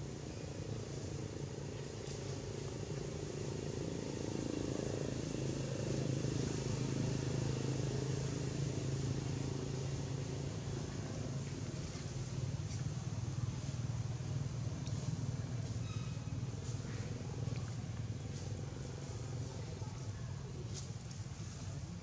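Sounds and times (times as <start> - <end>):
faint outdoor background noise: 0.0 - 22.0
low engine hum: 0.0 - 22.0.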